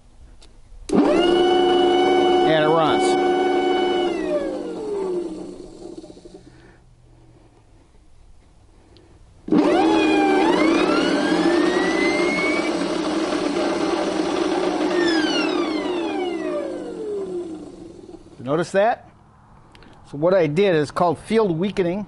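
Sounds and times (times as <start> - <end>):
electric motor whining: 0.9 - 6.5, 9.5 - 18.4.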